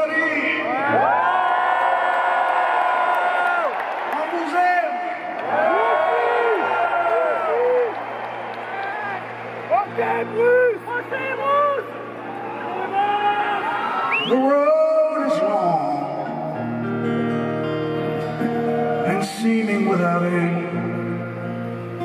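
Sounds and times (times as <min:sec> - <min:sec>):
crowd whooping and cheering: 0:00.6 - 0:14.7, 0:18.4 - 0:19.5
acoustic guitar playing: 0:14.6 - 0:22.0.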